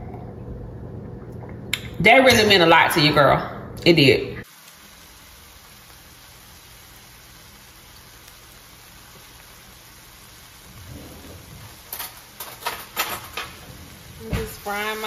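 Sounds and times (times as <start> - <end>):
steak sizzling in oil: 4.4 - 15.0.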